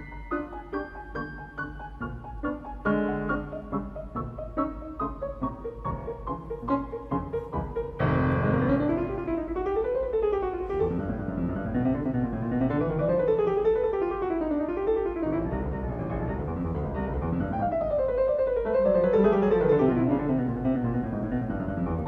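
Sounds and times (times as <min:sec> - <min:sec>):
piano playing: 0:00.0 - 0:22.0.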